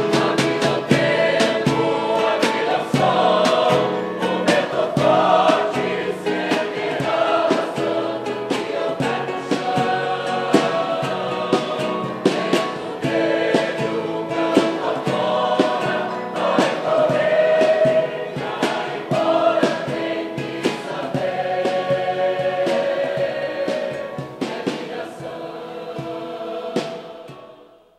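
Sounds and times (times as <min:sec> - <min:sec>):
steady beat: 0:00.0 - 0:27.5
mixed choir singing: 0:00.0 - 0:27.9.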